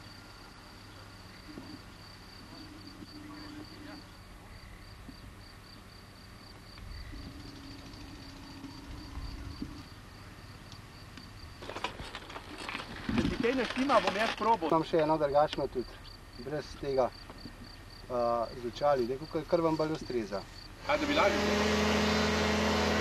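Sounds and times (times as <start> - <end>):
cricket chirping: 0.0 - 20.9
voices: 2.4 - 4.7, 13.2 - 17.2, 18.1 - 21.8.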